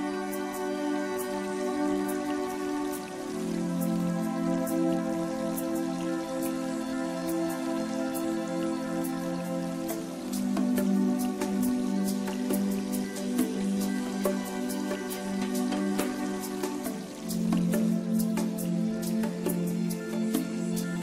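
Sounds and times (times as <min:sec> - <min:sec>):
soft sustained chords: 0:00.0 - 0:21.0.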